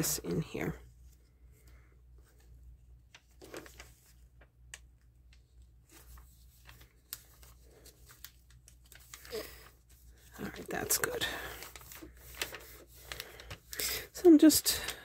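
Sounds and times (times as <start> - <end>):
magazine paper rustling: 0.4 - 15.0.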